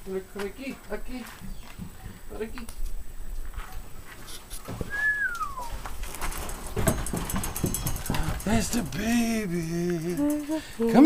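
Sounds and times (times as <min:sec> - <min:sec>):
high whistled animal call: 0:04.9 - 0:05.8.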